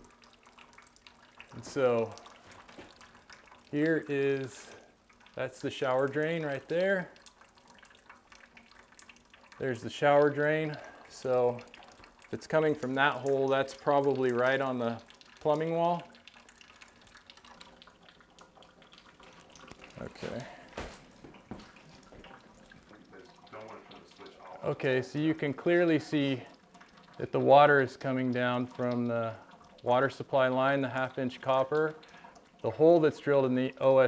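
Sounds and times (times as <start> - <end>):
water dripping: 0.0 - 34.0.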